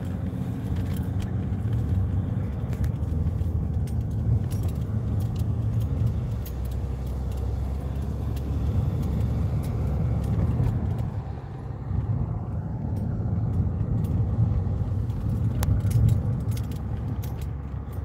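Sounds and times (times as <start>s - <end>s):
engine and tyre rumble: 0.0s - 18.0s
light rattling clicks: 0.0s - 18.0s.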